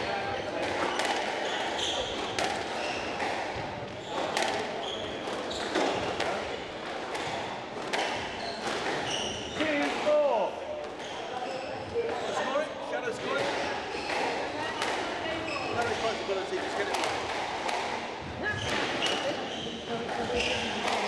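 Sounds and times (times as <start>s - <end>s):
squash ball cracks: 0.6s - 1.5s, 2.2s - 9.1s, 13.4s - 15.2s, 15.8s - 19.3s
shoes squeaking on wooden floor: 0.8s - 6.1s, 8.2s - 9.8s, 15.3s - 16.2s, 18.4s - 20.8s.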